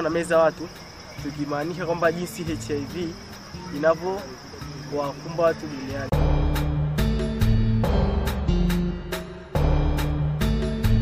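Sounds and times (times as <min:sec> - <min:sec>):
people talking: 0:00.0 - 0:06.2
crickets trilling: 0:00.0 - 0:08.0.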